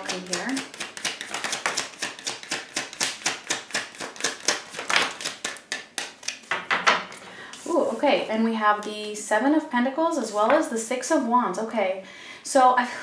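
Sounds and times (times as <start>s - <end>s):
cards being shuffled: 0.0s - 6.5s.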